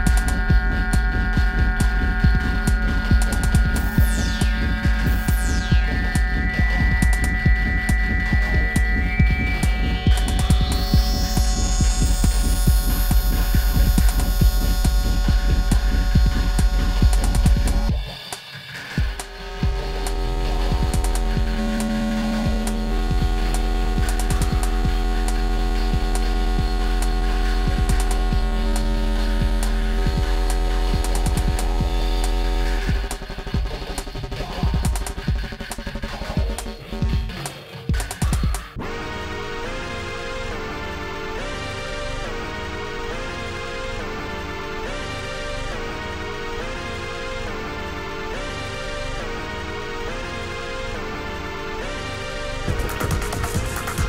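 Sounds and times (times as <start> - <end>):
rising synth sweep: 0.0 - 18.0, 19.1 - 33.6
deep bass drone: 0.0 - 18.1, 19.0 - 37.3, 38.8 - 54.0
sustained synth tones: 0.0 - 18.2, 19.0 - 35.2
techno kick-drum beat: 0.0 - 18.2, 18.9 - 38.8, 52.7 - 54.0
sharp percussive clicks: 37.4 - 38.7.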